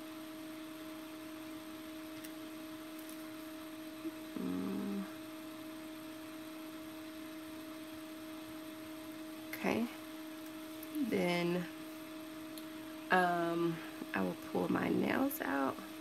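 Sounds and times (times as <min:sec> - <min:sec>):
low electrical hum: 0:00.0 - 0:16.0
person humming a note: 0:04.0 - 0:05.2.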